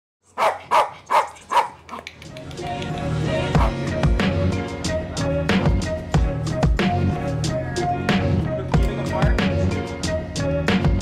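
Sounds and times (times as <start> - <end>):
dog barking: 0.3 - 2.0, 3.6 - 3.8.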